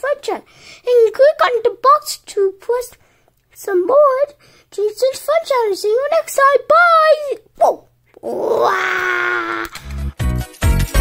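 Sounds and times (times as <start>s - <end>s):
long vocal cry: 8.2s - 9.9s.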